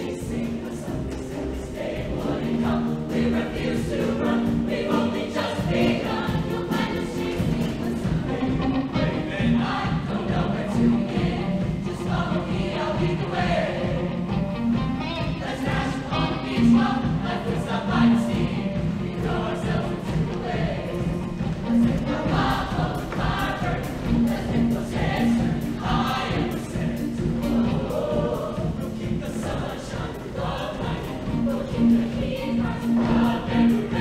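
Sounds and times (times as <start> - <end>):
choir singing: 0.0 - 34.0
live backing band: 0.0 - 34.0.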